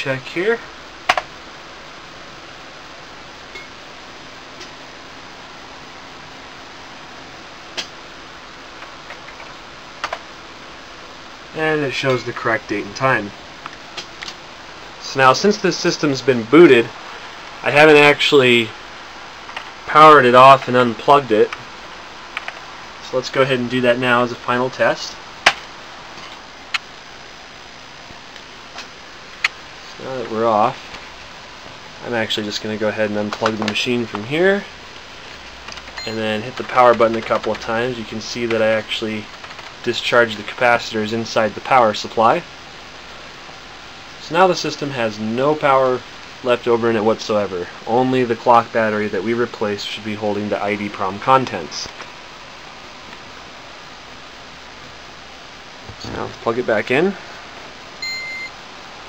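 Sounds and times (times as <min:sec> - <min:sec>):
steady background hiss: 0:00.0 - 0:59.0
sharp clicks: 0:01.1 - 0:01.3, 0:08.8 - 0:10.2, 0:22.3 - 0:22.7.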